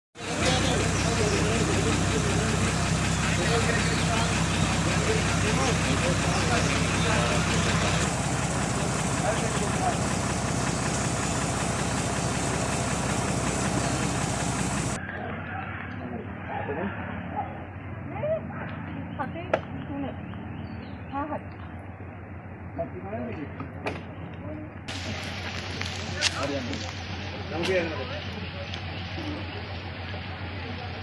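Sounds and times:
engine idling: 0:00.2 - 0:15.1, 0:18.7 - 0:31.0
people's voices: 0:00.2 - 0:21.8, 0:22.7 - 0:31.0.

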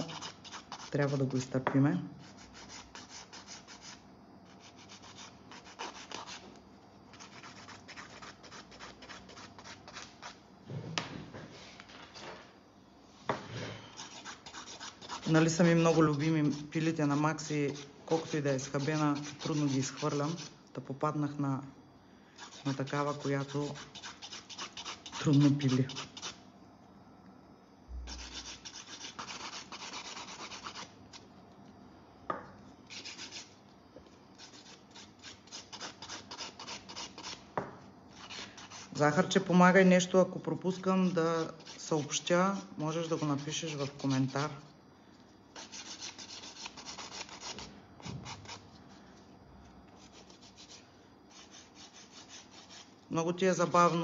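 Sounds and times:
nail file scraping: 0:00.0 - 0:01.4, 0:02.2 - 0:06.5, 0:07.1 - 0:10.4, 0:13.9 - 0:20.5, 0:22.4 - 0:26.4, 0:28.1 - 0:31.2, 0:32.9 - 0:33.6, 0:34.4 - 0:37.4, 0:38.1 - 0:39.2, 0:40.7 - 0:44.6, 0:45.6 - 0:48.6, 0:49.9 - 0:52.9.

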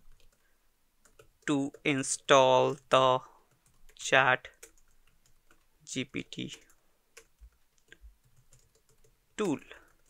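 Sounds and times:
soft keyboard keystrokes: 0:03.5 - 0:10.0.

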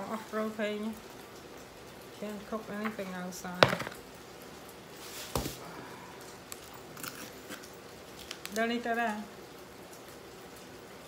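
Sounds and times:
knife knocking on wooden board: 0:03.6 - 0:04.0.

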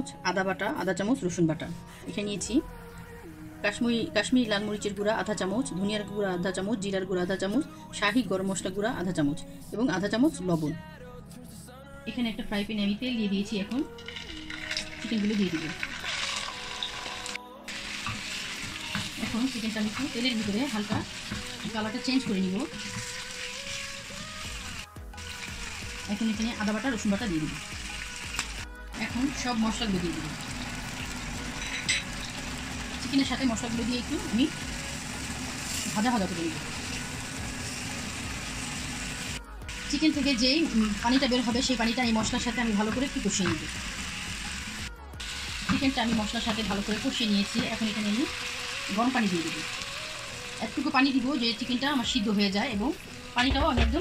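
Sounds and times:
chicken sizzling in hot oil: 0:14.0 - 0:53.6.

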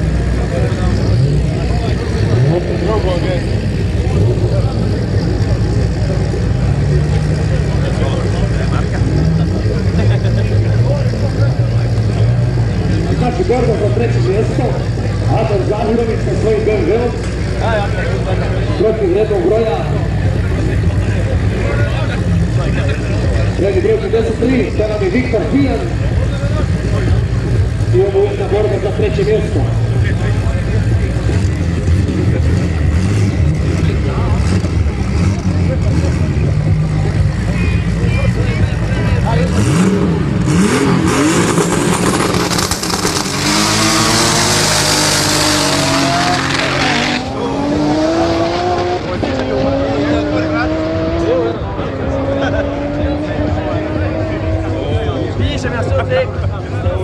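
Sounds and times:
race cars idling: 0:00.0 - 0:57.0
engine revving through gears: 0:31.0 - 0:37.4, 0:39.2 - 0:55.1
loud rushing noise: 0:39.4 - 0:51.2.

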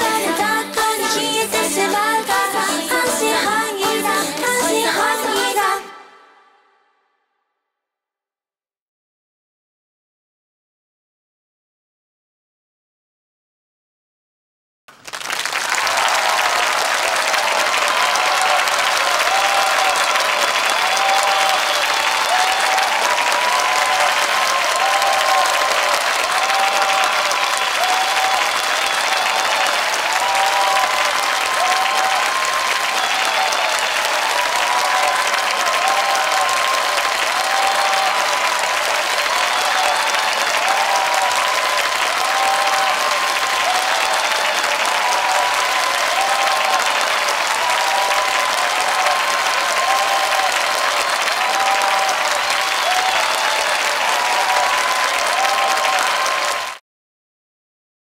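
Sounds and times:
dense applause: 0:00.0 - 0:06.2, 0:14.9 - 0:56.8.

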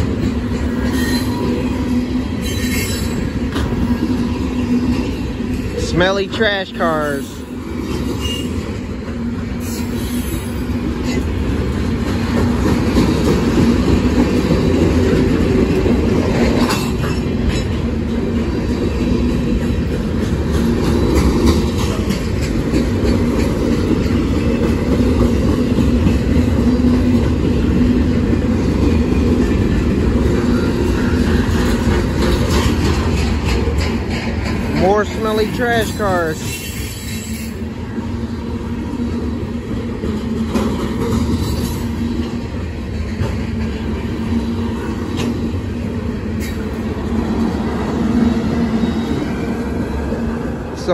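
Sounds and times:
wheels clicking over rail joints: 0:00.0 - 0:37.7, 0:38.5 - 0:50.9
train wheels rumbling on rails: 0:00.0 - 0:50.9.

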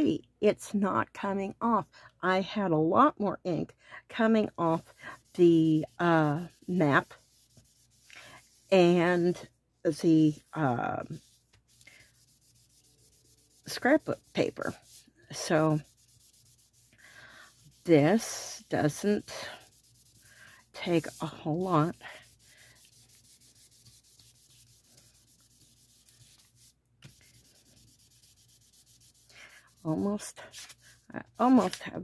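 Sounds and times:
hand rubbing oily paper: 0:04.6 - 0:31.9.

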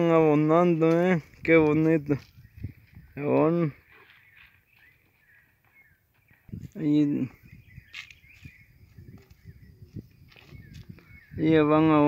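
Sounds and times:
footsteps crunching on stony soil: 0:00.3 - 0:11.4.

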